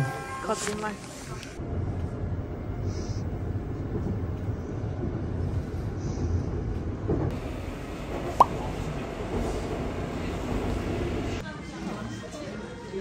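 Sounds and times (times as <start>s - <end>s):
subway train rumbling: 0.0s - 13.0s.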